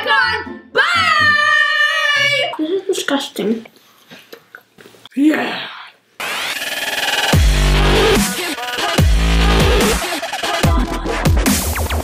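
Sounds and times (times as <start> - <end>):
mouth and chewing noises: 3.6 - 5.1
child's wordless vocal outburst: 5.1 - 6.0.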